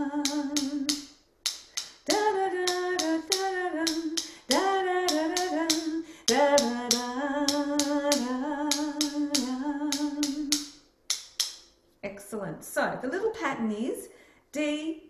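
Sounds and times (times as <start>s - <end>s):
woman singing held notes: 0.0s - 1.0s, 2.0s - 10.6s
mallet handles clicking together: 0.2s - 11.8s.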